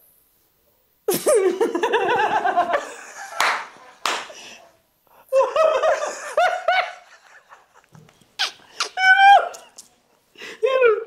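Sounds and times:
hand clap: 3.4s - 4.4s.

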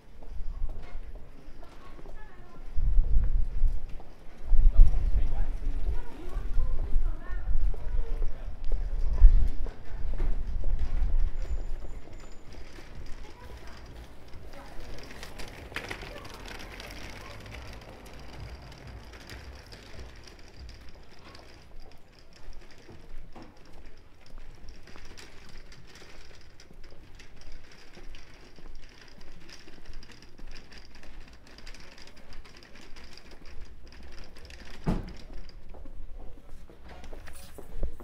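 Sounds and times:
trolley wheels rattling over cobblestones: 0.0s - 38.0s.

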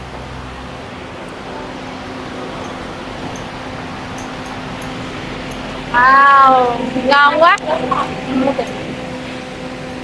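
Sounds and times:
electric fan whirring: 0.0s - 10.0s.

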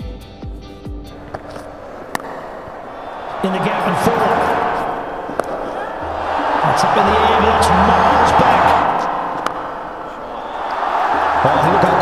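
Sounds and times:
sharp crack: 1.2s - 5.9s, 9.3s - 11.3s
stadium crowd noise: 1.4s - 12.0s.

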